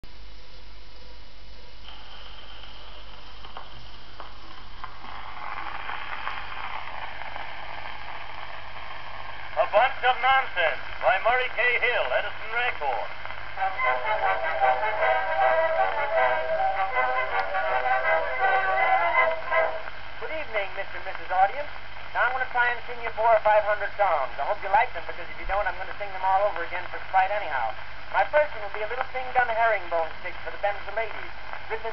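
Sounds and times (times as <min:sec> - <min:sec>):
phonograph surface hiss: 0:00.0 - 0:31.9
instrumental music from wax cylinder: 0:13.6 - 0:20.0.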